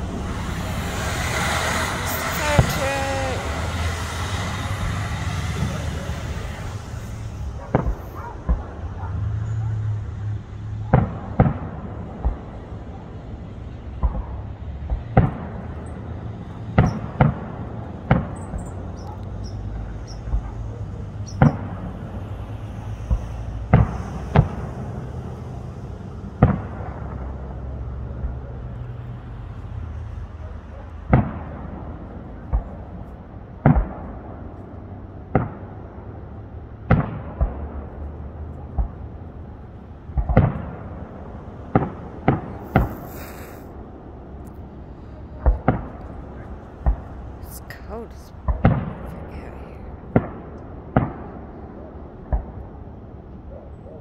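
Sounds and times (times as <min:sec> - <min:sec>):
fireworks bursting: 0:00.0 - 0:09.0, 0:36.9 - 0:51.4.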